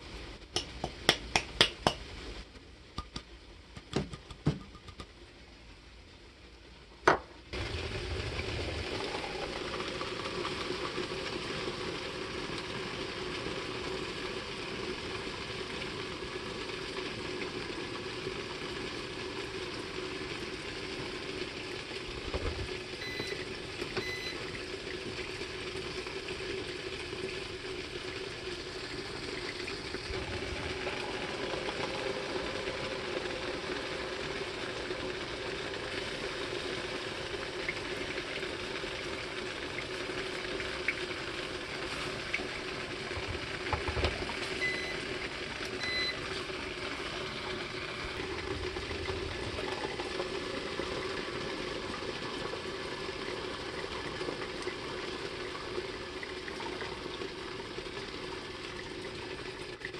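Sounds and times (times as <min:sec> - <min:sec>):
water pouring onto coffee grounds: 0:22.8 - 0:59.9.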